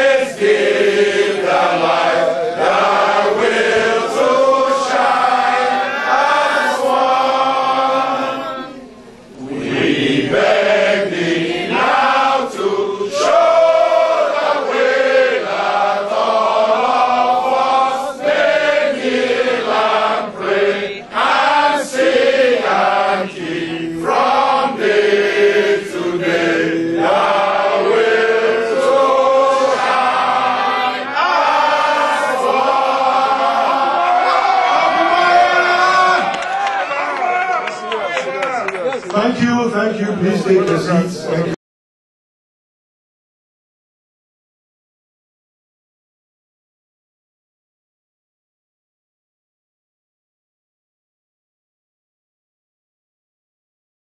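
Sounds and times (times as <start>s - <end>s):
men and women singing in chorus: 0.0s - 8.8s, 9.4s - 36.3s.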